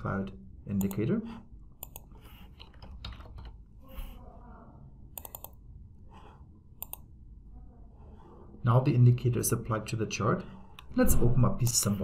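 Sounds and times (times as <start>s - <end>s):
quiet computer clicks: 0.7s - 1.1s, 1.8s - 3.6s, 5.1s - 5.6s, 6.8s - 7.1s.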